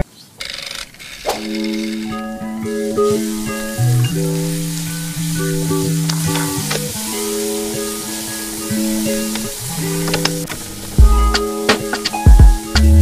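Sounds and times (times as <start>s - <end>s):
background music of held notes: 1.4s - 13.0s
meat sizzling in a wok: 2.8s - 10.9s.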